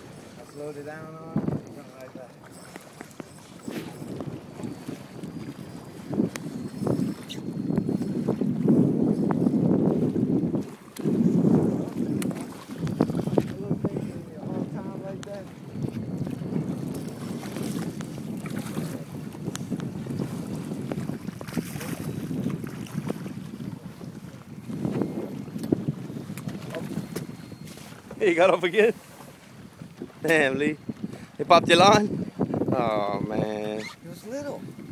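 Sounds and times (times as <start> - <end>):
choppy water: 0.0 - 34.9
wind gusting on microphone: 0.0 - 34.9.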